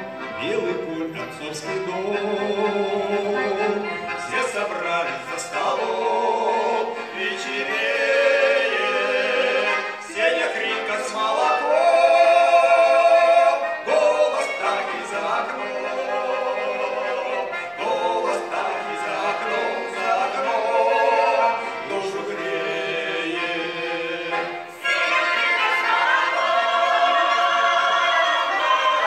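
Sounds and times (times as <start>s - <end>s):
button accordion: 0.0s - 29.0s
men singing folk song: 0.4s - 29.0s.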